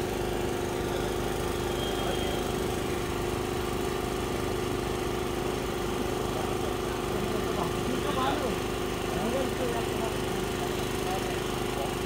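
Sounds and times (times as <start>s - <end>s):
motor hum: 0.0s - 12.0s.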